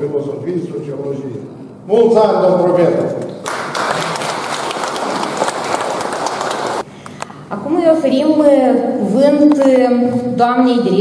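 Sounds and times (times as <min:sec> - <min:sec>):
audience applauding: 0:03.4 - 0:06.9.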